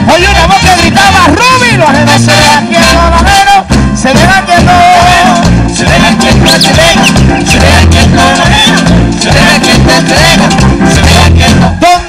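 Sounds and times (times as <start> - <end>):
merengue orchestra playing: 0.0 - 12.0.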